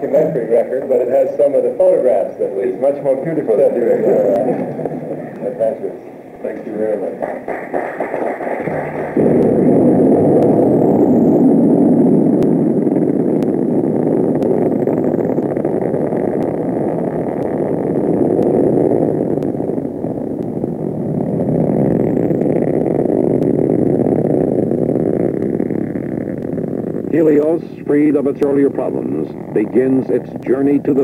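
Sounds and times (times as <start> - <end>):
rocket lifting off roaring: 0.0 - 31.0.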